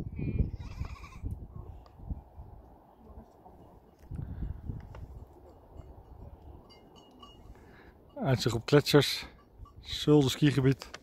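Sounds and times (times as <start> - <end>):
wind buffeting microphone: 0.0 - 2.8, 4.0 - 6.8.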